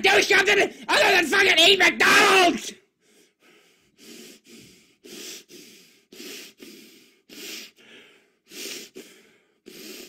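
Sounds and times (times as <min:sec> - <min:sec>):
man breathing hard: 0:02.9 - 0:10.0.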